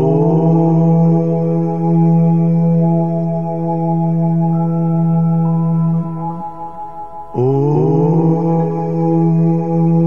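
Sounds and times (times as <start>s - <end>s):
meditation drone music: 0.0s - 10.0s
voice chanting om: 0.0s - 10.0s.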